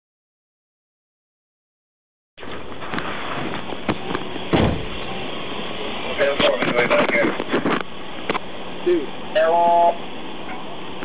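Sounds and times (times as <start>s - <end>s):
heavy thud of debris: 4.5s - 5.1s.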